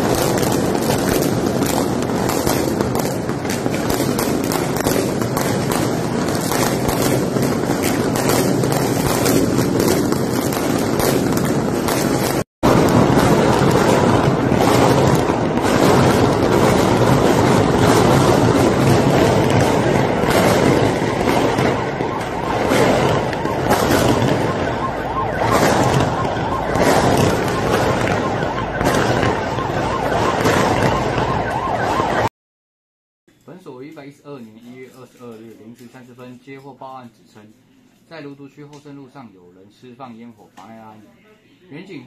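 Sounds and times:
firecrackers crackling and popping: 0:00.0 - 0:32.3, 0:33.5 - 0:37.5.

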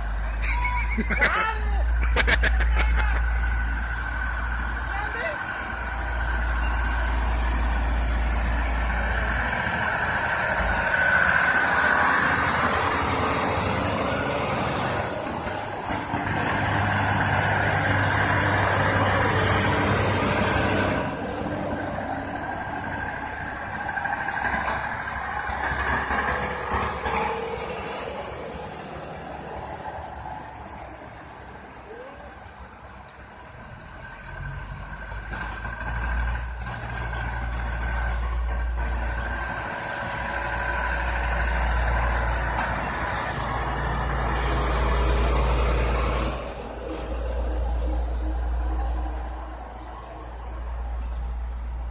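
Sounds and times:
dump trucks driving past: 0:00.0 - 0:51.9.

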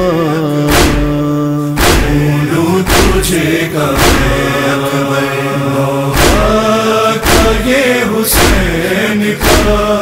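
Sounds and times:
low vocal drone: 0:00.0 - 0:10.0
man chanting a lament: 0:00.0 - 0:10.0
deep thump: 0:00.7 - 0:01.2, 0:01.8 - 0:03.4, 0:04.0 - 0:04.5, 0:06.1 - 0:06.6, 0:07.2 - 0:07.7, 0:08.3 - 0:08.8, 0:09.4 - 0:09.9.

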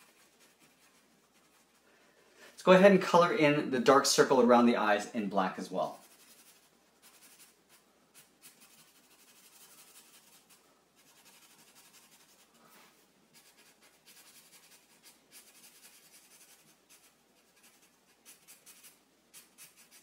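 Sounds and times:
marker scratching on paper: 0:00.0 - 0:01.8, 0:05.8 - 0:12.5, 0:13.3 - 0:20.0.

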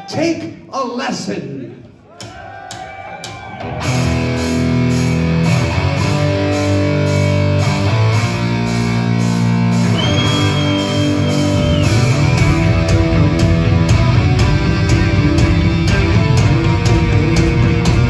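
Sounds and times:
heavy metal band playing: 0:03.6 - 0:18.0.

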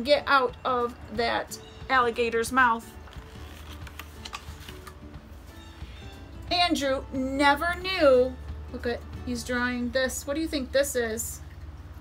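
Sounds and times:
book page turning: 0:02.9 - 0:05.1.

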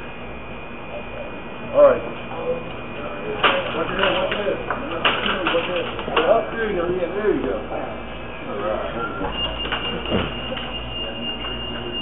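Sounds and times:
restaurant room noise: 0:00.0 - 0:12.0
steady high-pitched tone: 0:08.2 - 0:12.0.

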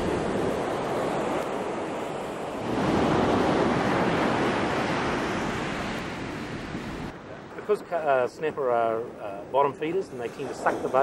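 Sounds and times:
surf breaking on sandy beach: 0:00.0 - 0:08.3.

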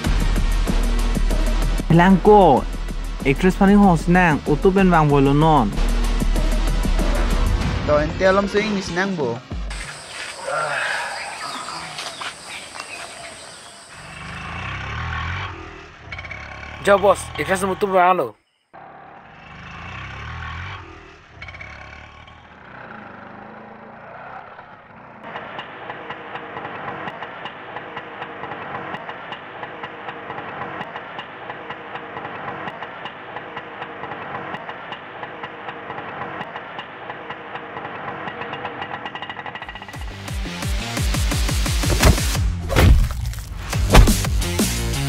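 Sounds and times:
auto-rickshaw engine idling: 0:00.0 - 0:18.1, 0:18.8 - 0:42.7.

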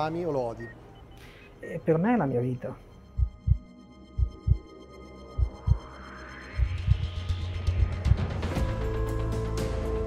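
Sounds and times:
heartbeat thumps: 0:03.1 - 0:04.7, 0:05.3 - 0:05.9, 0:06.6 - 0:08.4
rising whoosh: 0:05.4 - 0:08.5.

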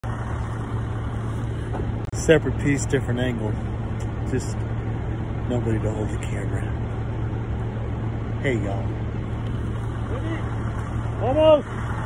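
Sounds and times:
low engine drone: 0:00.0 - 0:12.0.

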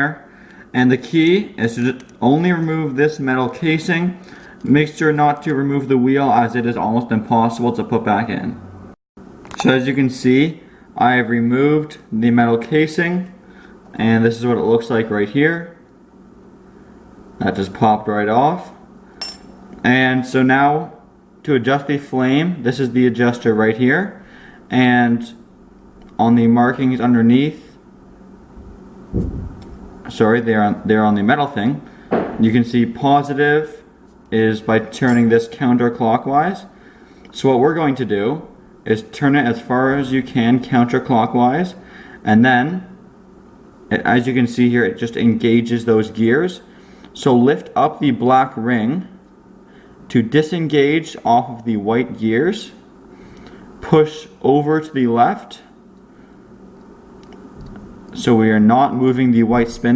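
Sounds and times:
low steady hum: 0:00.0 - 0:59.9
low rumble of handling noise: 0:28.4 - 0:36.2.

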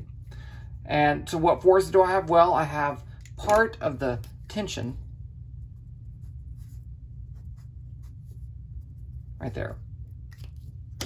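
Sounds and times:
steady low hum: 0:00.0 - 0:11.0
marker drawing on paper: 0:05.6 - 0:09.7.

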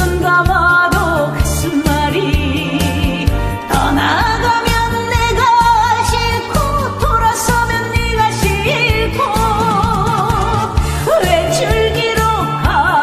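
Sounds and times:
backing track with steady beat: 0:00.0 - 0:13.0
woman singing with vibrato: 0:00.0 - 0:13.0.

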